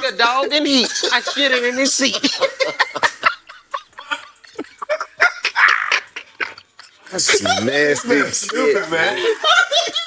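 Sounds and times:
men laughing hard: 0.9s - 10.0s.

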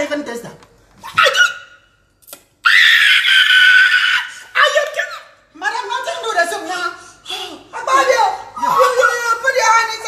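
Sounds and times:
woman screaming: 2.6s - 4.7s.

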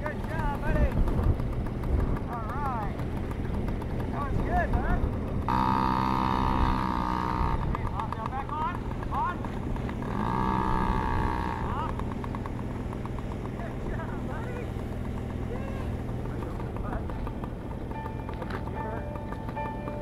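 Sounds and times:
small two-stroke engine revving: 0.0s - 20.0s.

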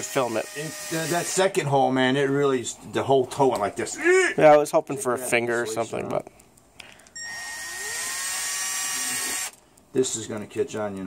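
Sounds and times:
power drill motor whine: 0.0s - 1.4s, 7.2s - 9.6s.

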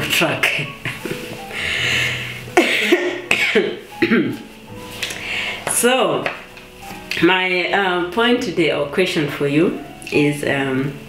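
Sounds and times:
woman laughing: 0.8s - 1.4s.

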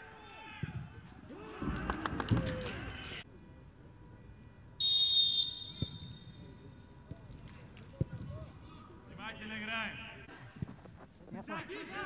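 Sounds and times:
referee's whistle blast: 4.8s - 6.4s.

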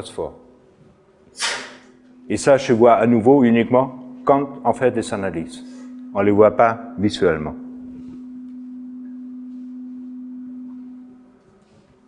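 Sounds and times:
steady low tone: 1.8s - 12.0s
faint higher steady tone: 1.9s - 12.0s.

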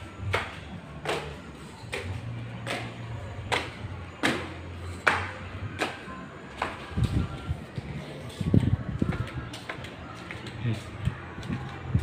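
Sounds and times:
footsteps on concrete stairs: 0.0s - 12.0s.

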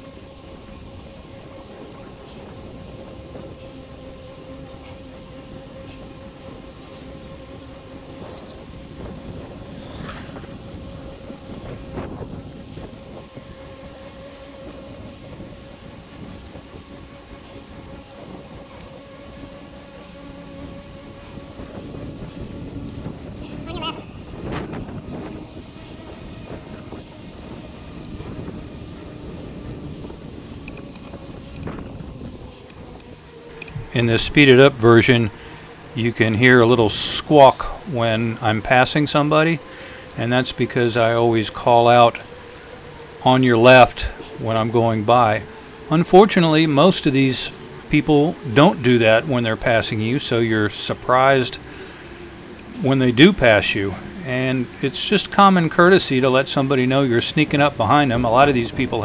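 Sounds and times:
bicycle tyre and wind noise: 0.0s - 59.0s
high-pitched squeaky voice call: 23.6s - 24.1s.

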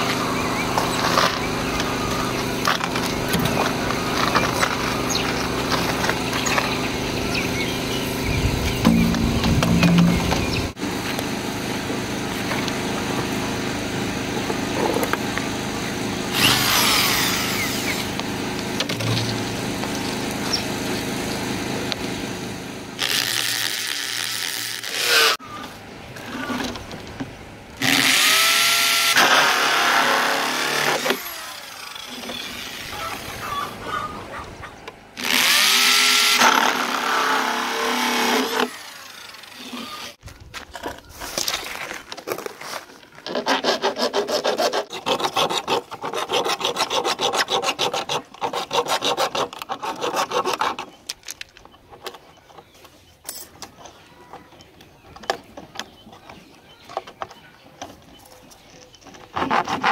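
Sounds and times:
saw cutting plastic pipe: 8.8s - 10.8s, 16.3s - 18.2s, 23.0s - 25.4s, 27.8s - 33.5s, 35.2s - 40.2s, 43.2s - 51.0s, 59.3s - 59.9s.

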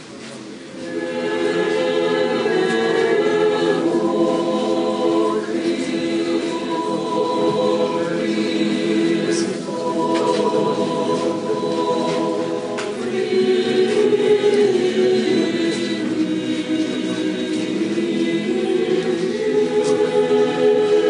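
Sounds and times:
choir singing unaccompanied: 0.7s - 21.0s.

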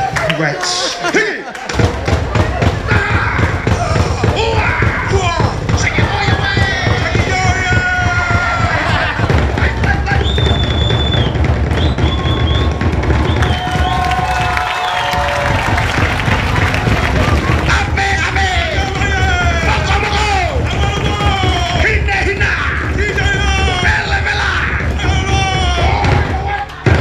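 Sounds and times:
fast loud drumming: 1.7s - 27.0s
people shouting calls: 2.2s - 27.0s.

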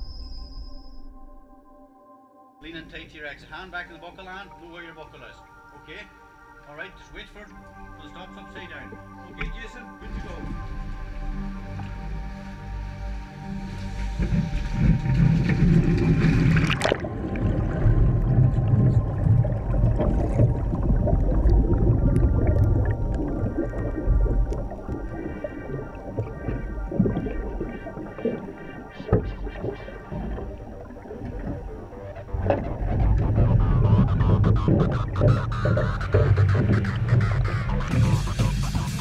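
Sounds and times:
music: 0.0s - 39.0s
muffled water rushing underwater: 2.9s - 39.0s
splash: 13.6s - 33.3s
heavy low rumble: 14.0s - 29.5s, 30.1s - 39.0s.

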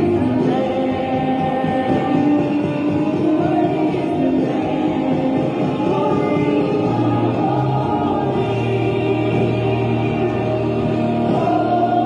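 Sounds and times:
choir singing gospel music: 0.0s - 12.0s.

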